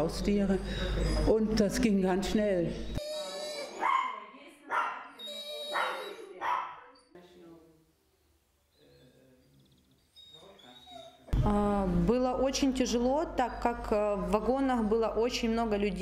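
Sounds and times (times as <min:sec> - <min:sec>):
dog high-pitched cries: 0:03.0 - 0:06.9, 0:10.1 - 0:11.3.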